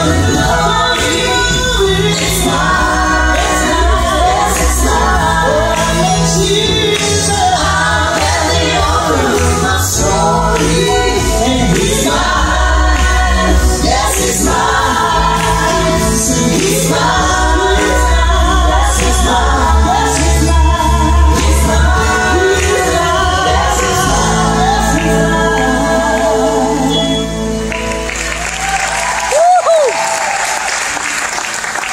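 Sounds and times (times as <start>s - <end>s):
women's vocal group singing in harmony: 0.0s - 27.6s
keyboard accompaniment: 0.0s - 29.2s
audience applause: 27.7s - 31.9s.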